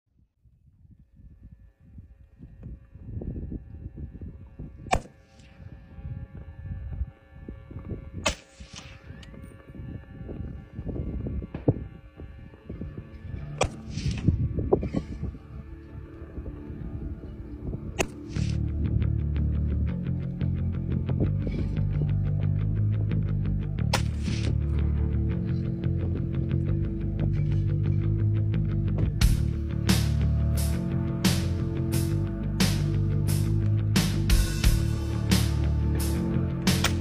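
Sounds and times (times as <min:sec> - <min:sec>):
wind rumble on microphone: 0:00.1 - 0:36.7.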